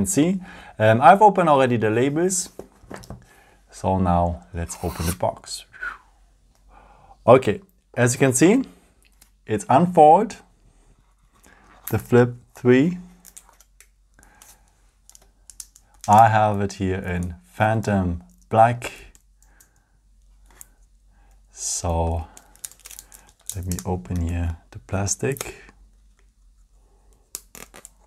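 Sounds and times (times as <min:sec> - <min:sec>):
plastic wrapping crinkling: 0:13.1 - 0:16.2, 0:22.2 - 0:24.4, 0:27.2 - 0:28.0
faint handling of plastic: 0:22.1 - 0:24.6.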